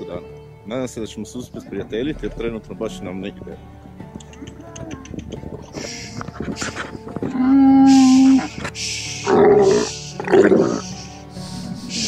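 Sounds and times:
breathy hiss: 5.7s - 7.1s, 7.8s - 12.0s
camel moaning and growling: 6.2s - 11.0s.

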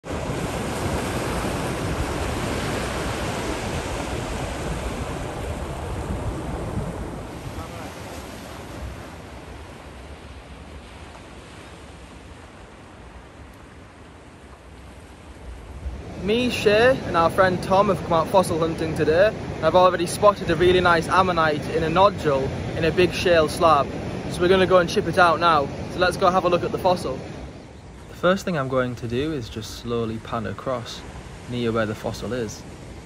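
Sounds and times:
sea surf breaking on beach: 0.0s - 33.0s.

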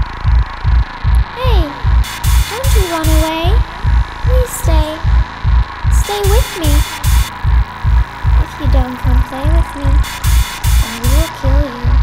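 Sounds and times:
heavy kick drum: 0.0s - 12.0s.

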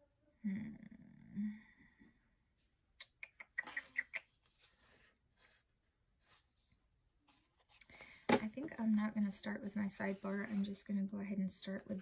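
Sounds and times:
person humming: 0.4s - 1.8s.

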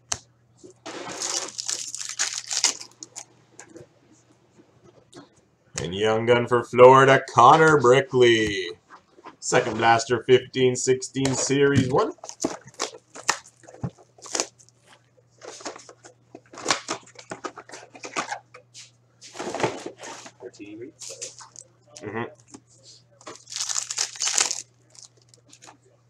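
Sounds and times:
foil wrappers crinkling and tearing: 0.9s - 3.3s, 12.1s - 14.9s, 23.2s - 25.8s.

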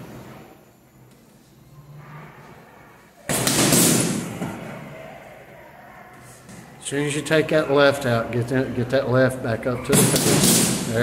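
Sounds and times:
boxing gloves hitting punching bag: 3.3s - 4.5s, 9.9s - 11.0s.

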